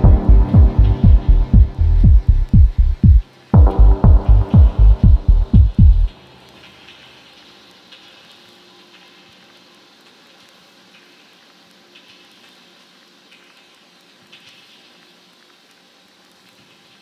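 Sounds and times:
pounding kick drum: 0:00.0 - 0:06.1
soft held synth tones: 0:00.0 - 0:06.2
hissing crackling texture: 0:00.0 - 0:17.0.

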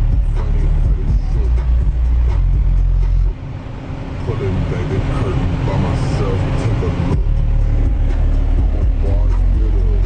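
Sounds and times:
car engine and road noise rumble: 0:00.0 - 0:10.0.

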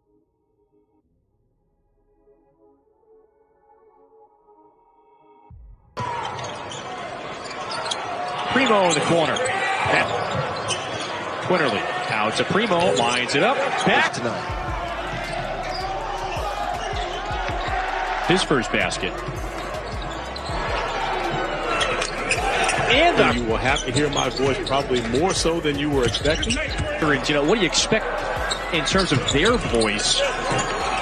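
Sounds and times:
arena crowd noise: 0:06.0 - 0:31.0.

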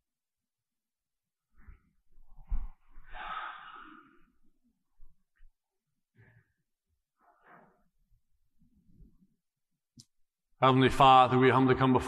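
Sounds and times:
person sighing: 0:03.1 - 0:04.2.

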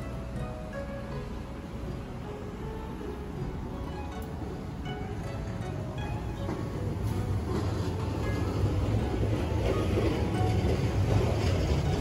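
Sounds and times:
soft background music: 0:00.0 - 0:12.0
street traffic rumble: 0:00.0 - 0:12.0.

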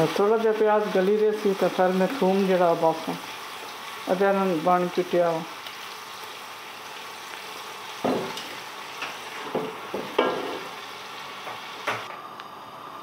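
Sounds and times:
onions sizzling in a pot: 0:00.0 - 0:13.0.

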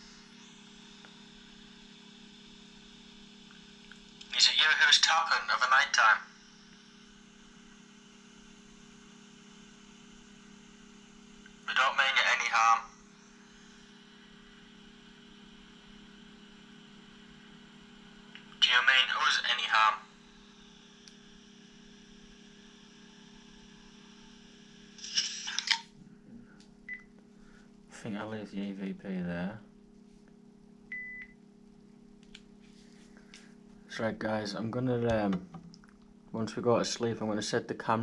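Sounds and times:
low electrical hum: 0:00.0 - 0:38.0.

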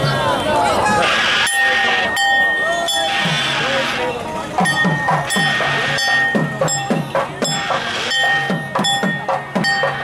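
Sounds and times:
drum beats: 0:01.0 - 0:10.0
sharp metallic strikes: 0:01.3 - 0:10.0.

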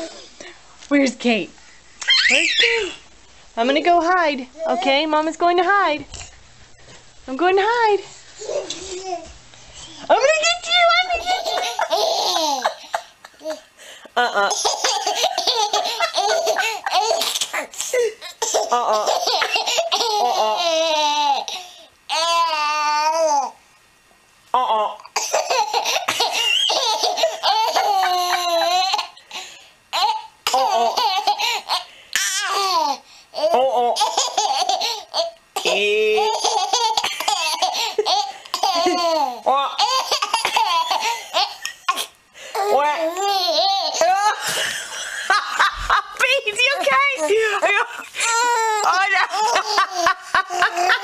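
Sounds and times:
baby laughing: 0:02.0 - 0:02.9, 0:11.1 - 0:23.5, 0:25.2 - 0:29.3, 0:29.9 - 0:44.5, 0:48.1 - 0:51.0.

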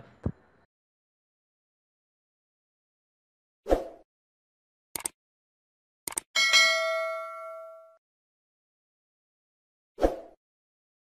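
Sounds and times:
mouse clicks: 0:05.0 - 0:05.2
bell notification chime: 0:06.4 - 0:08.0.

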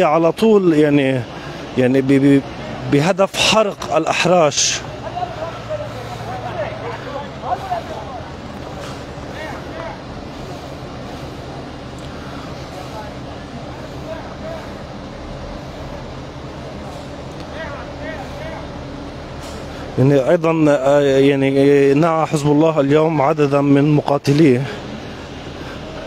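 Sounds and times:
faint voices: 0:00.0 - 0:26.0
fire engine running: 0:00.0 - 0:26.0.

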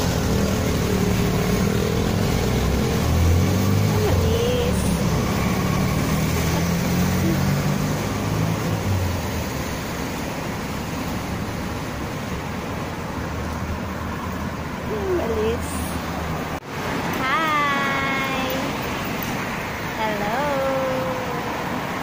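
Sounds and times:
car engines passing: 0:00.0 - 0:22.0.

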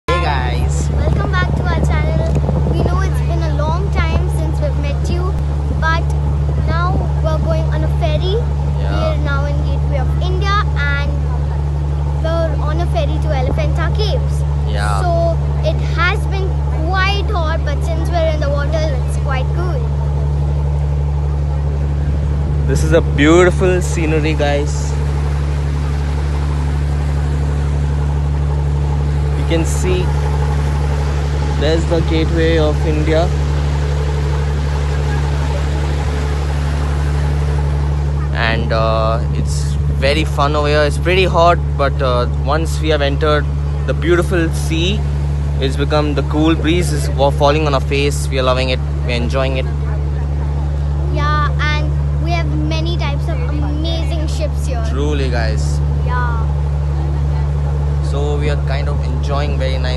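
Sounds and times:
ferry engine droning: 0:00.0 - 0:59.9
water rushing: 0:00.0 - 0:59.9
wind: 0:00.0 - 0:59.9
people talking and laughing: 0:00.1 - 0:19.8, 0:49.0 - 0:57.6.

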